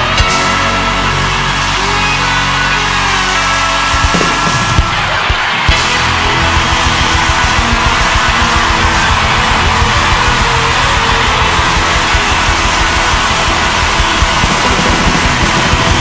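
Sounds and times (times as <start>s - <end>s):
constant low bass: 0.0s - 16.0s
live rock band music: 0.0s - 16.0s.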